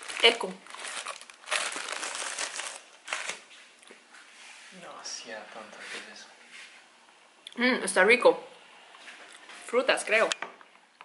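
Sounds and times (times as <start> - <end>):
plastic lid crinkling: 0.0 - 3.5.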